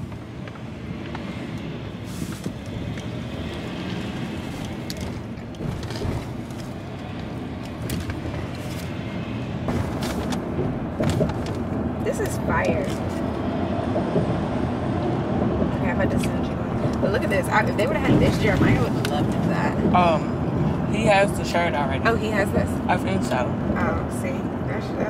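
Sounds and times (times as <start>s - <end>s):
small clicks and rustles: 0.0s - 9.0s
car cabin rumble: 0.0s - 25.0s.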